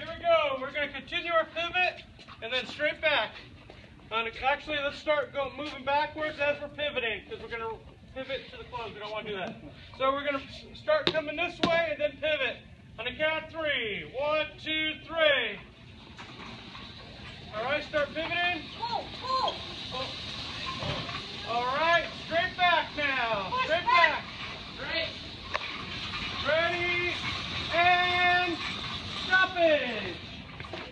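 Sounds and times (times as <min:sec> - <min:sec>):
steady background hum: 0:00.0 - 0:30.9.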